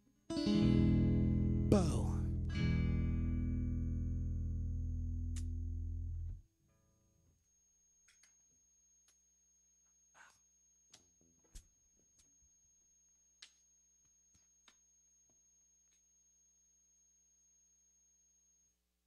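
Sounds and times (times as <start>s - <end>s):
guitar slide: 0.3s - 5.6s
guitar chord ringing: 0.3s - 6.4s.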